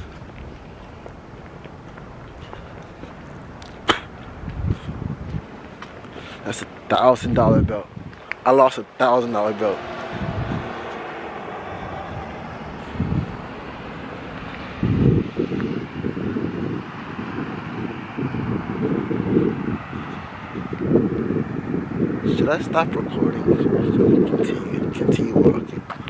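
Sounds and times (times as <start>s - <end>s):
faint outdoor hiss: 0.0s - 10.1s
wind buffeting microphone: 0.0s - 26.0s.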